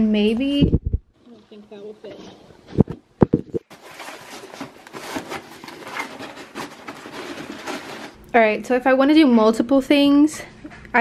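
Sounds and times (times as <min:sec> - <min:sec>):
fabric boxes rustling and scraping: 0:03.6 - 0:08.2.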